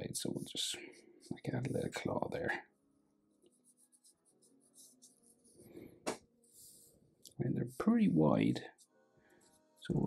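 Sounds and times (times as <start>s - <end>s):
marker scratching on paper: 3.5s - 5.6s.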